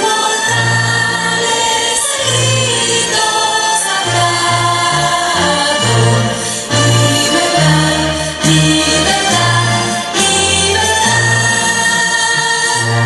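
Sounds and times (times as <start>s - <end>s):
choir singing: 0.0s - 13.0s
instrumental accompaniment: 0.0s - 13.0s.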